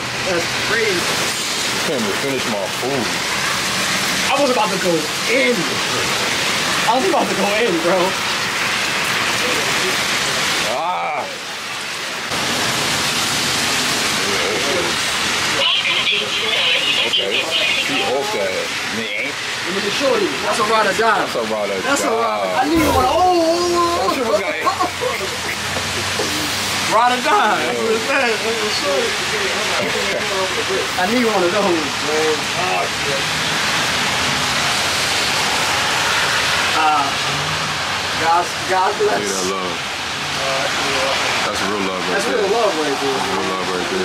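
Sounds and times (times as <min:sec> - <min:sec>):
heavy rain on pavement: 0:00.0 - 0:44.0.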